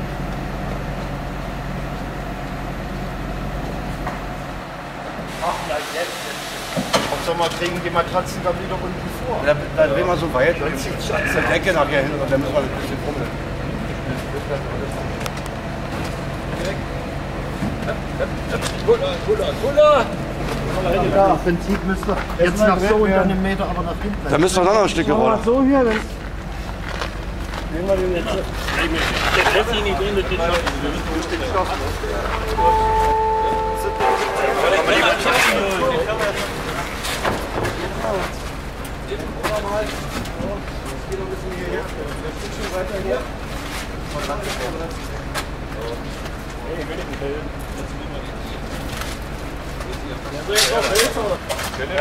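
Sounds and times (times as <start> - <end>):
men talking and calling out: 7.1 - 26.4, 27.5 - 48.8.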